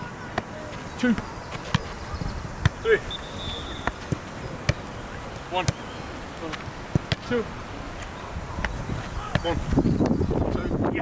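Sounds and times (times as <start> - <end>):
man counting aloud: 0.1 - 1.3, 2.8 - 3.2, 7.2 - 7.6, 9.1 - 9.8
football thuds: 0.3 - 10.2.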